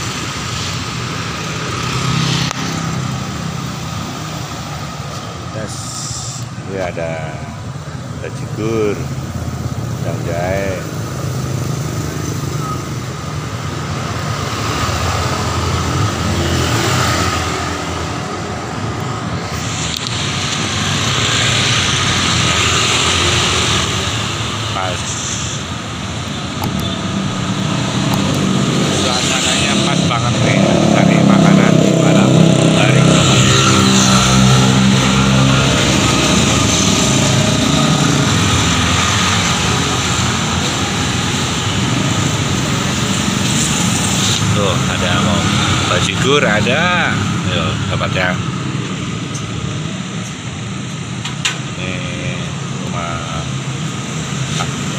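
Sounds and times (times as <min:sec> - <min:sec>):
cars and motorcycles passing: 0:00.0 - 0:54.9.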